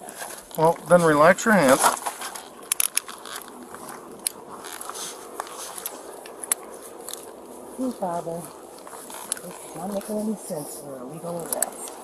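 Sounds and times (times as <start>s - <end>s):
clothing rubbing against microphone: 0.0s - 12.0s.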